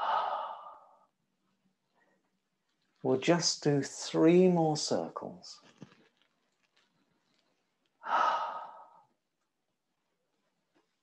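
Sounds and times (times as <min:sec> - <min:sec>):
breathy sigh: 0:00.0 - 0:01.0, 0:08.0 - 0:09.1.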